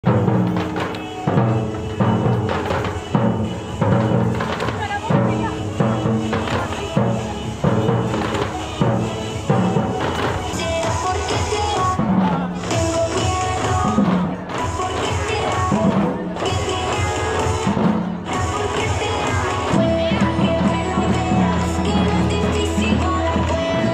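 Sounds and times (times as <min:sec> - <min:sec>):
pitched melody: 0:00.0 - 0:23.9
surdo drums beating: 0:00.0 - 0:23.9.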